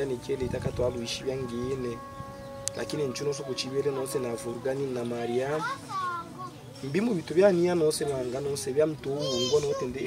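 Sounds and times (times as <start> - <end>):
man talking: 0.0 - 2.0, 2.7 - 5.6, 6.8 - 10.0.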